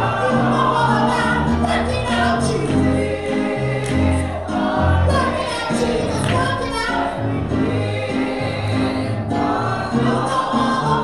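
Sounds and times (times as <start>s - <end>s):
group singing gospel: 0.0s - 11.0s
instrumental accompaniment with bass: 0.0s - 11.0s.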